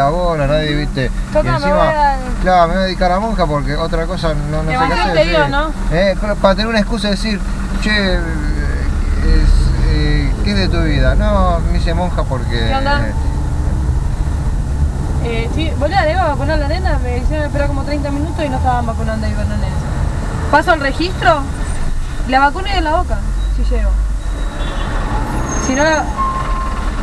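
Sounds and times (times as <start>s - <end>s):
car engine and road rumble: 0.0s - 27.0s
short steady beep: 23.4s - 26.9s.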